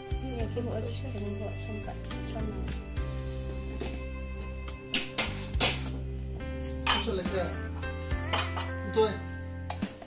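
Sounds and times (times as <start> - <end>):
background music: 0.0 - 10.0
kitchenware clinking: 3.7 - 6.0, 6.6 - 10.0.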